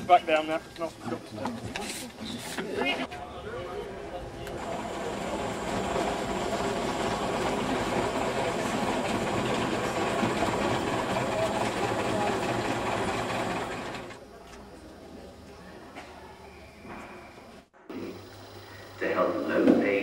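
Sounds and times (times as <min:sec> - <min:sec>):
vintage bus engine clattering: 0:04.4 - 0:14.2
wheels on cobbles: 0:04.4 - 0:14.2.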